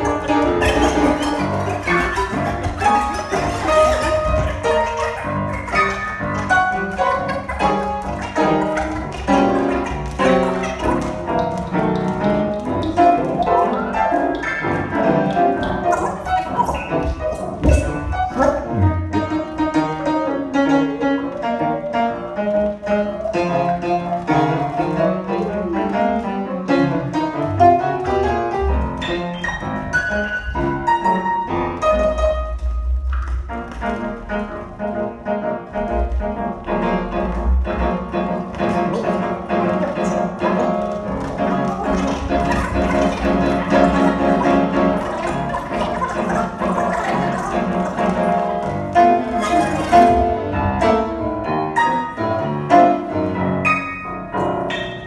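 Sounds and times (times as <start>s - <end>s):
improvised music with gliding tones: 0.0s - 55.0s
piano: 0.0s - 55.0s.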